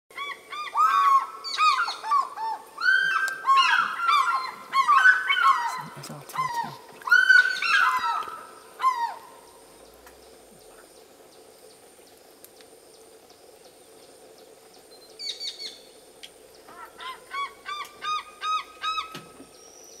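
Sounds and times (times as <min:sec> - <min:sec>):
eagle calling: 0:00.1 - 0:09.8, 0:16.6 - 0:19.6.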